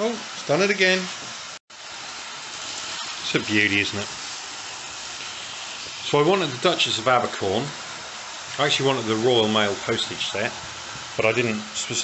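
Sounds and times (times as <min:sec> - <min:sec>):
model train running hiss: 0:00.0 - 0:12.0.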